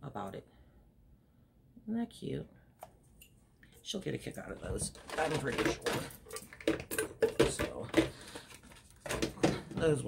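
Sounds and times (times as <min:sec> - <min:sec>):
small items knocking and clattering: 0:04.4 - 0:10.0.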